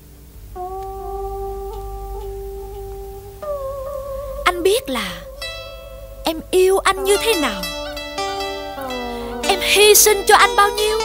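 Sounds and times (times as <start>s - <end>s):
instrumental long held note: 0.0s - 11.0s.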